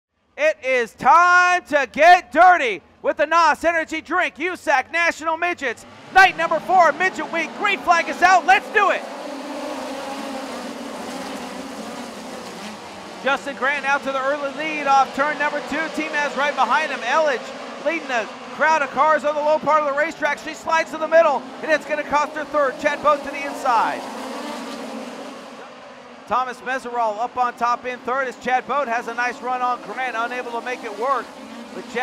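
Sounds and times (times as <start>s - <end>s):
race car engines droning: 0.6s - 32.0s.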